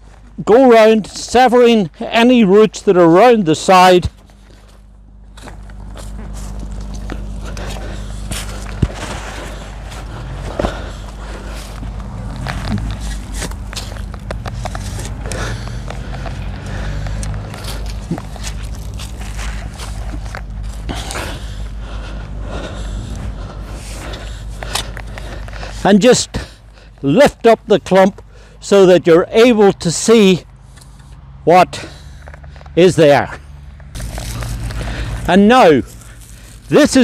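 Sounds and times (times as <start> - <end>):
steady low rumble: 0.0 - 37.0
shovel scraping and crunching soil: 3.2 - 28.5, 31.7 - 37.0.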